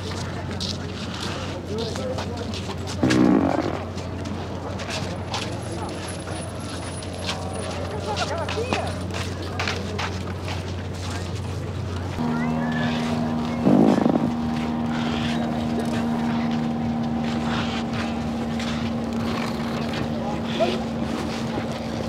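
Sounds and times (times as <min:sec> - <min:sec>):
rough fart noise: 0:03.0 - 0:04.0, 0:12.6 - 0:15.5
pitched motor drone: 0:12.1 - 0:22.0.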